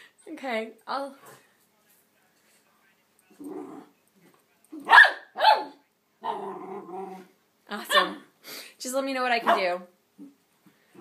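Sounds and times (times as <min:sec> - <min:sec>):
puppy growling: 0:03.4 - 0:04.0, 0:06.2 - 0:07.4
puppy barking: 0:04.8 - 0:06.4, 0:07.9 - 0:08.2, 0:09.4 - 0:09.8.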